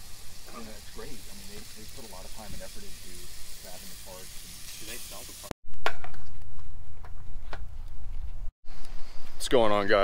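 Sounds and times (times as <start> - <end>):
sausage sizzling on griddle: 0.0 - 5.6.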